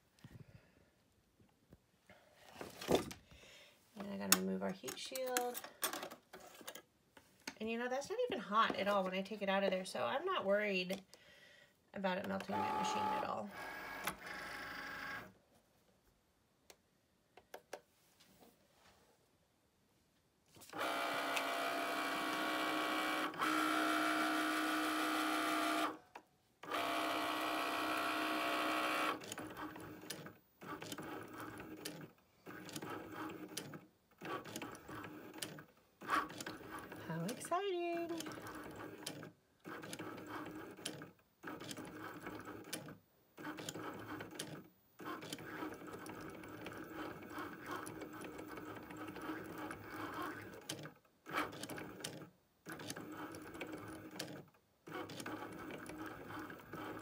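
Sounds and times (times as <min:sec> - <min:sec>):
cutting machine motors whining: 0:12.5 - 0:15.2.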